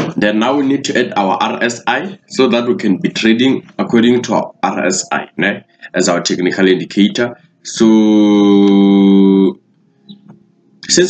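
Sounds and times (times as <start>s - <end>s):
man saying drawn-out uhh: 2.0s - 9.6s.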